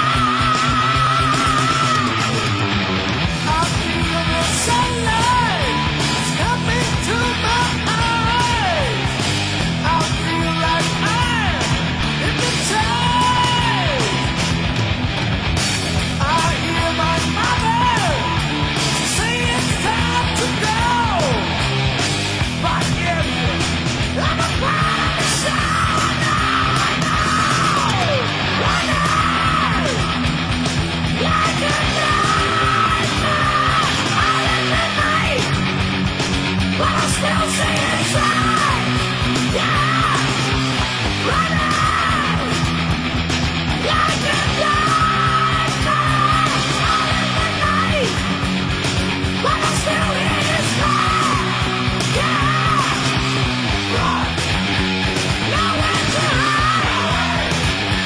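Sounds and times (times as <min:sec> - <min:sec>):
heavy metal band playing live: 0:00.0 - 0:58.0
singer yelling high note: 0:41.2 - 0:42.7, 0:49.4 - 0:54.4, 0:55.4 - 0:57.6.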